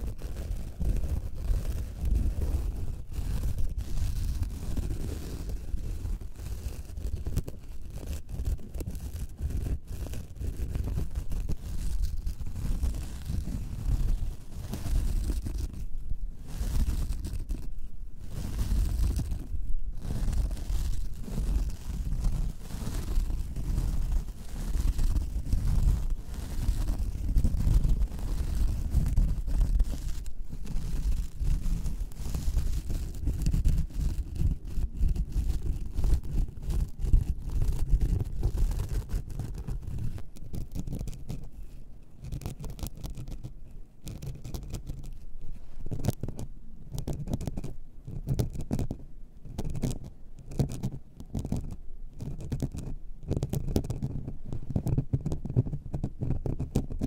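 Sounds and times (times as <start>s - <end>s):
fingernails scratching: 0.0s - 57.0s.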